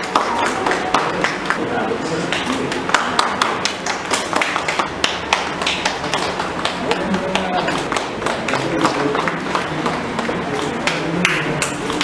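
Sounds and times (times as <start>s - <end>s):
audience clapping: 0.0s - 12.0s.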